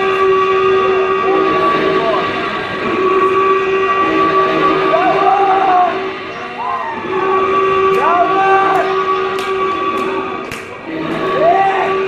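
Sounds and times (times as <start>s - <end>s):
held synth notes: 0.0s - 12.0s.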